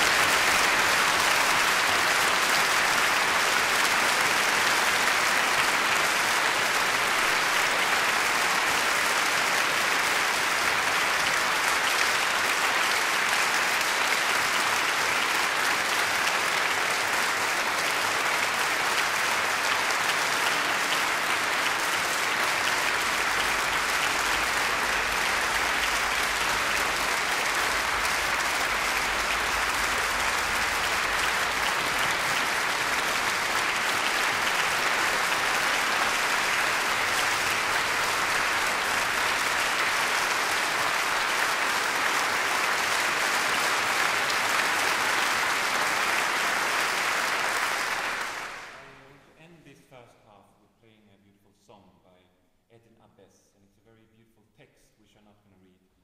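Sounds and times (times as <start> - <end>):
audience applauding: 0.0 - 49.2.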